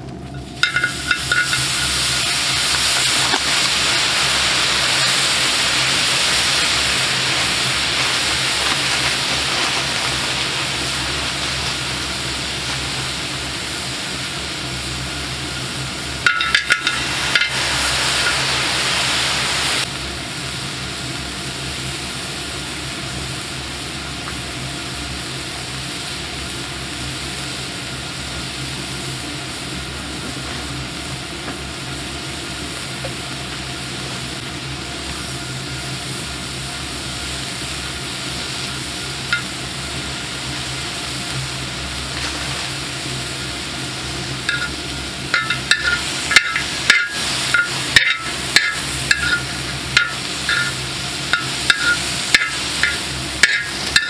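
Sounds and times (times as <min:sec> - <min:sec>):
shellfish sizzling on a griddle: 0:00.0 - 0:54.0.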